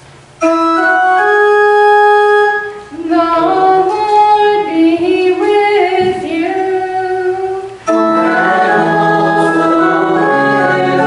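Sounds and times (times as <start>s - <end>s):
organ chords: 0.2s - 11.0s
choir singing: 7.9s - 11.0s.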